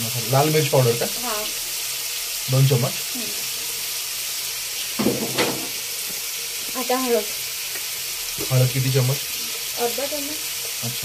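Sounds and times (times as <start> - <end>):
food sizzling in a hot pan: 0.0 - 11.0.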